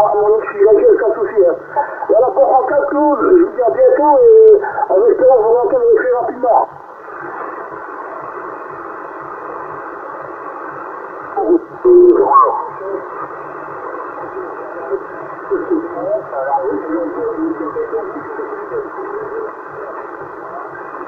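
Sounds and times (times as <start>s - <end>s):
garbled radio voices: 0.0s - 6.7s, 11.4s - 21.0s
muffled radio band noise: 0.0s - 21.0s.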